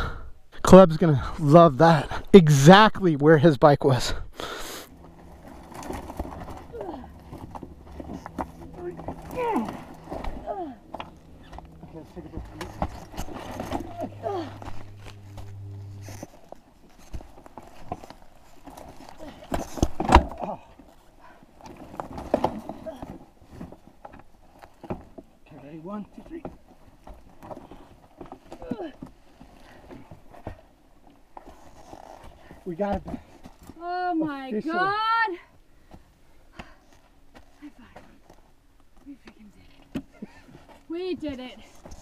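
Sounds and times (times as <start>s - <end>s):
low steady hum: 0.0s - 42.0s
dirt bike dragged on rocky slope: 4.0s - 30.7s, 40.2s - 42.0s.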